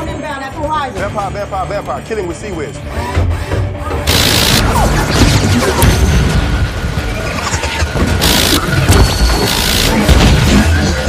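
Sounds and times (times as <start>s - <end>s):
rotary cannon firing bursts: 4.1s - 4.7s, 8.1s - 8.9s.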